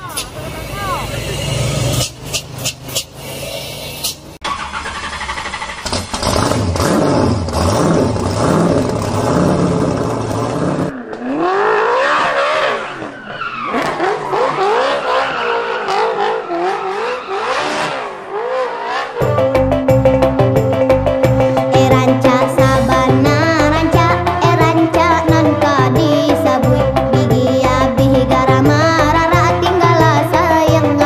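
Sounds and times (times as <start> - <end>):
vehicle engines revving: 0.0 - 31.0.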